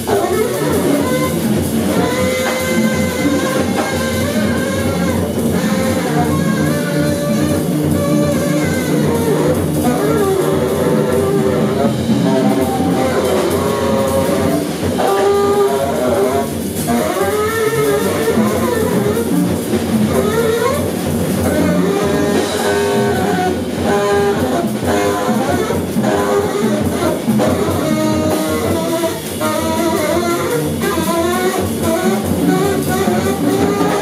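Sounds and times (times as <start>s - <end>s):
drum kit: 0.0s - 34.0s
saxophone: 0.0s - 34.0s.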